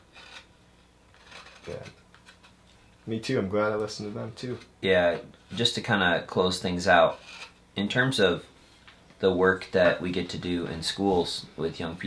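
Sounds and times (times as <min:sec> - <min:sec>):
blade scraping bark: 0:01.1 - 0:02.0.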